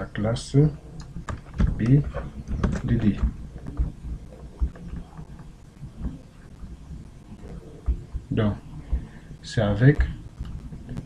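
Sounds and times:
person speaking: 1.7s - 6.2s, 7.3s - 10.3s
dull low thumps: 5.4s - 11.0s.

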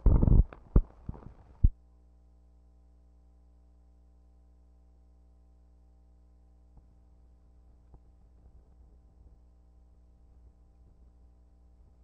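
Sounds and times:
film projector thumps and pops: 0.0s - 1.7s
faint steady hum: 0.0s - 12.0s.

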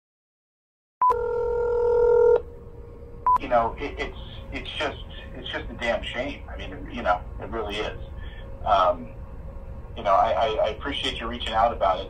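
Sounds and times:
steady telephone tone: 1.0s - 2.4s.

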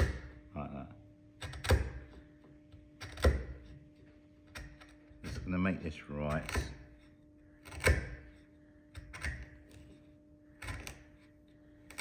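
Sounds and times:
chisel paring wood: 0.0s - 0.4s, 1.4s - 9.9s, 10.6s - 12.0s
faint steady hum: 0.0s - 12.0s.

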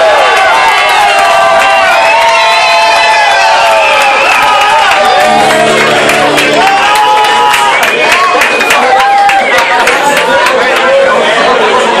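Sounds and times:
crowd chatter: 3.4s - 12.0s.

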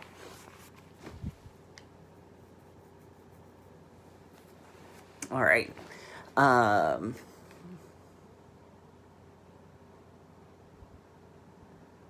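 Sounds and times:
fan hum: 0.0s - 12.0s.

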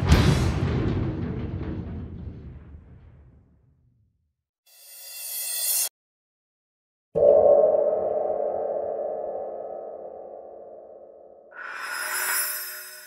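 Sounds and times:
rising whoosh: 7.2s - 13.0s
synthesized ringing hit: 7.2s - 13.0s.

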